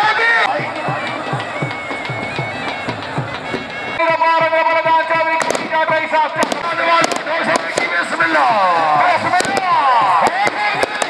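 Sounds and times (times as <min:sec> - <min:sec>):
droning bagpipe tune: 0:00.0 - 0:07.4
fast drumbeat: 0:00.4 - 0:11.0
sharp bangs: 0:00.4 - 0:11.0.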